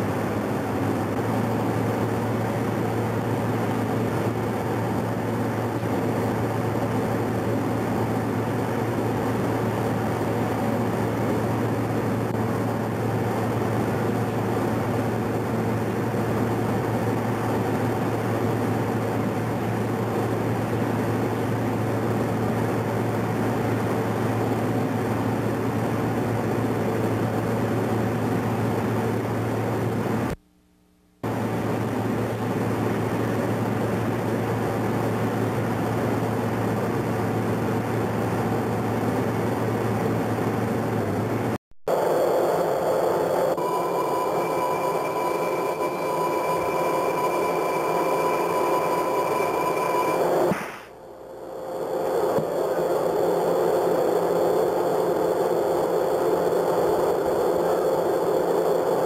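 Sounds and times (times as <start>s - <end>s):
machinery low hum: 0.0s - 59.0s
steady high whine: 0.0s - 59.0s.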